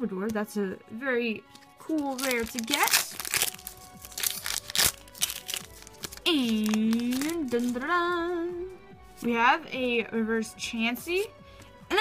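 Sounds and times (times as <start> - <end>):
foil wrapper tearing and crinkling: 1.5 - 7.8.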